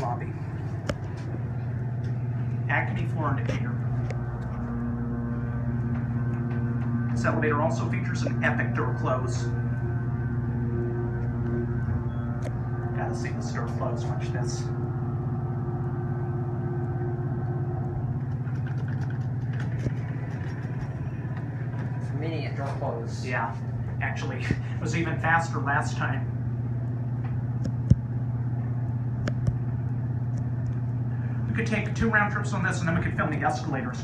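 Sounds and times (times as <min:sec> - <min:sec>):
elevator pump motor hum: 0:00.0 - 0:34.0.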